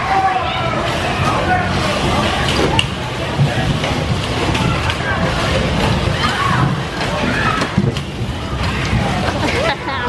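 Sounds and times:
people shouting: 0:06.0 - 0:07.8.

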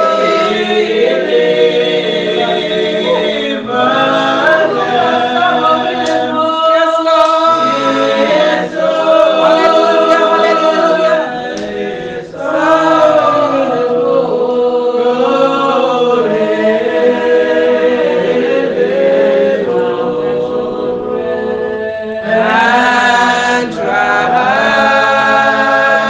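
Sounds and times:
group singing unaccompanied: 0:00.0 - 0:26.0.

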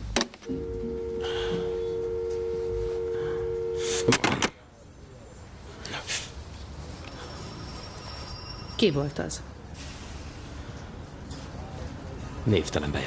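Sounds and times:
telephone dial tone: 0:00.5 - 0:04.2.

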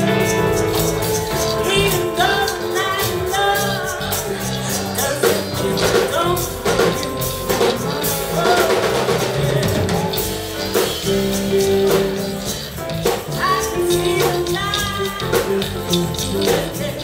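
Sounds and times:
live funk band playing: 0:00.0 - 0:17.0
woman singing: 0:01.1 - 0:07.0, 0:13.3 - 0:17.0.

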